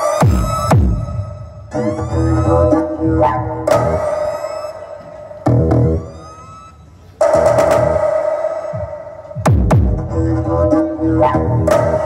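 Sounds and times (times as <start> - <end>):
siren-like synth bursts: 0.0 - 8.9.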